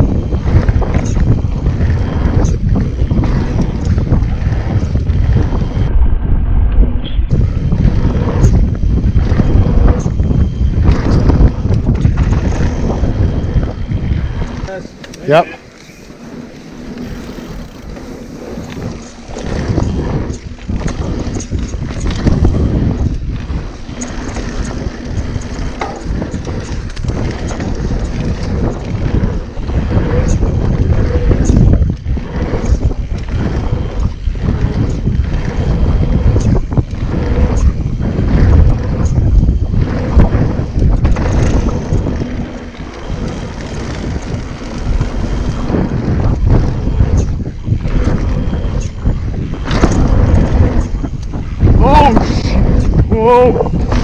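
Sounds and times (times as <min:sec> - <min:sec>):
bike knocks and rattles: 0:00.0 - 0:05.9, 0:06.8 - 0:54.0
tyres rumbling on dirt: 0:00.0 - 0:05.9, 0:07.3 - 0:54.0
wind rushing over microphone: 0:00.0 - 0:54.0.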